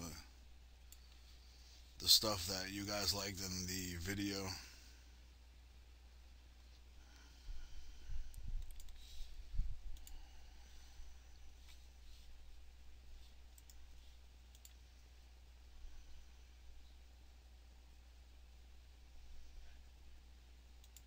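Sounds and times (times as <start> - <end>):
low electrical hum: 0.0 - 21.0
computer mouse clicking: 8.3 - 9.1, 9.9 - 10.2, 13.5 - 13.8, 14.5 - 14.8, 20.8 - 21.0.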